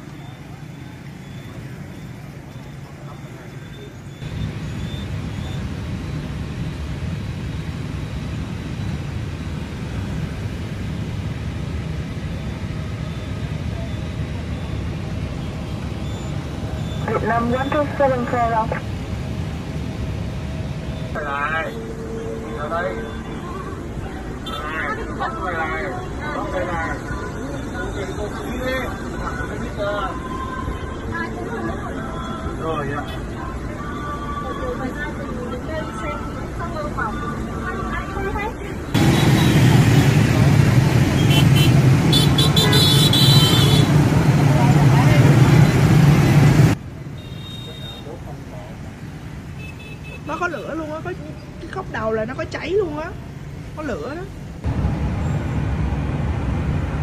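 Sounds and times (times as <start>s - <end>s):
vehicle engine rumble: 0.0s - 57.0s
faint voices: 17.0s - 18.8s, 21.2s - 39.0s
steady low rumble: 54.4s - 57.0s.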